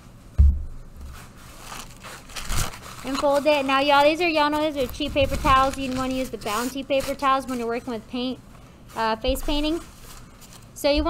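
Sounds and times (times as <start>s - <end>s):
soft thump: 0.4s - 0.8s
paper towel rustling and crinkling: 1.0s - 11.0s.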